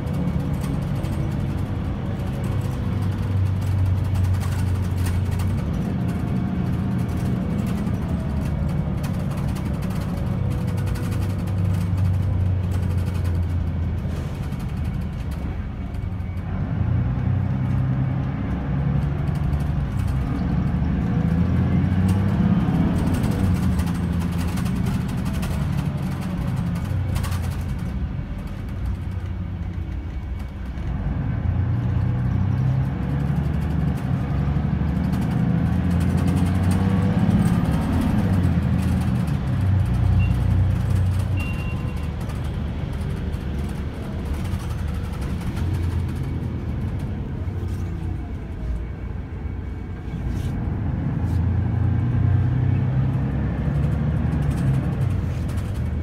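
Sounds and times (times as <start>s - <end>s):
bus engine revving: 0.0s - 56.0s
road and tyre noise: 0.0s - 56.0s.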